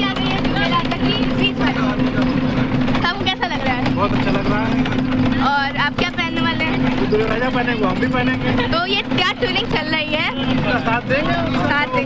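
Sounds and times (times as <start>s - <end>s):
bus engine drone: 0.0s - 12.0s
people talking: 0.0s - 12.0s.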